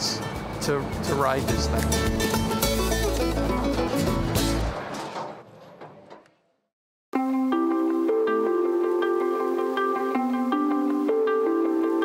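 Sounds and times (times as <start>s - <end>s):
background music with strong bass: 0.0s - 4.8s.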